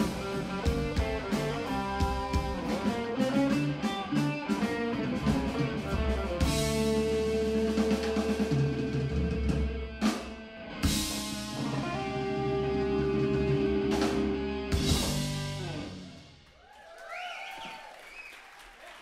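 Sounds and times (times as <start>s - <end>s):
electric guitar: 0.0s - 16.4s
bass guitar: 0.0s - 16.5s
drum kit: 0.0s - 16.6s.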